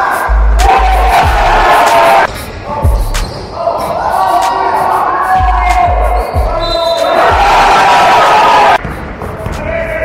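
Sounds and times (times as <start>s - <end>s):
players' voices echoing: 0.0s - 8.2s.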